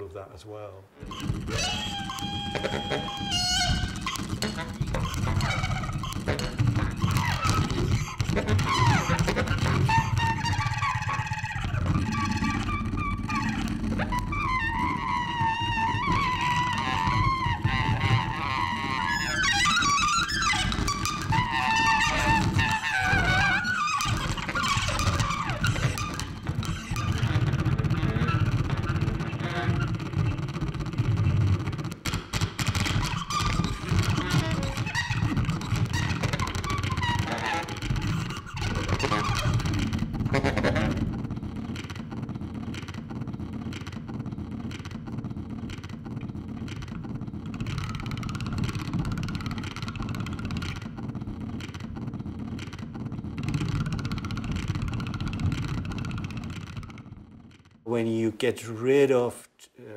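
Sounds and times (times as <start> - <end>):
baritone saxophone: 1.0 - 30.4, 32.9 - 41.1
bowed daxophone: 1.0 - 31.4, 32.1 - 41.2.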